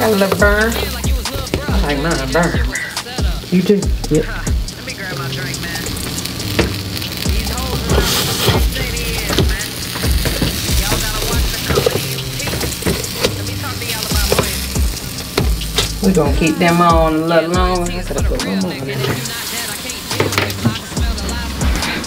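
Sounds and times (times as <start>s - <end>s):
burger patties sizzling on grill: 0.0s - 22.0s
hip hop music: 0.0s - 22.0s
spatula clicking on grill plate: 8.0s - 16.0s.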